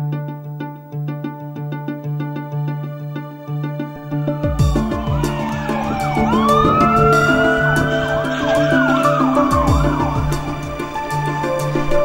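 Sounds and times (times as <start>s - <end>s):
music with steady beat: 3.7s - 12.0s
siren wailing: 4.4s - 12.0s
siren yelping sweeps: 4.4s - 12.0s.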